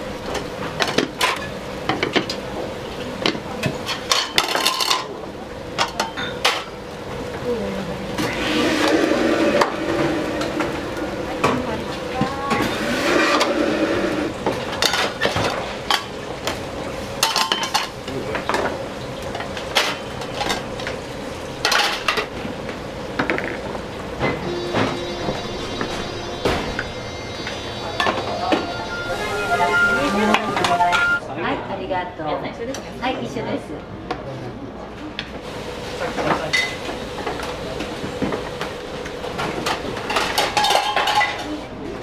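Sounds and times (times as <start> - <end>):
steady kitchen hum: 0.0 - 42.0
metal pans and utensils clinking: 3.6 - 5.1, 17.2 - 18.7, 39.5 - 41.6.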